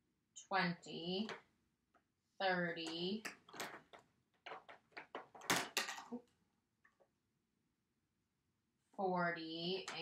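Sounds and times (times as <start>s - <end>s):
plastic cubes clicking: 3.2s - 6.2s.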